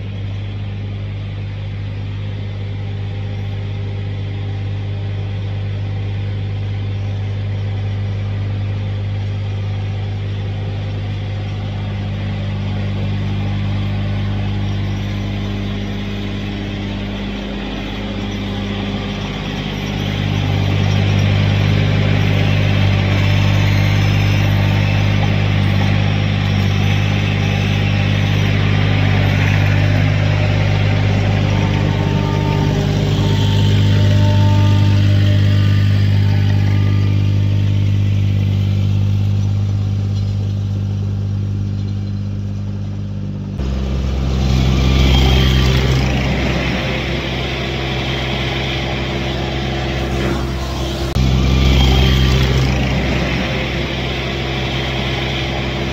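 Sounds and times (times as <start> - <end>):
small loader engine running: 0.0 - 55.9.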